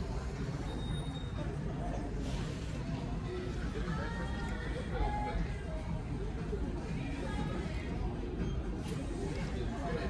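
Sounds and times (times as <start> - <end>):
in-store music: 1.3 - 10.0.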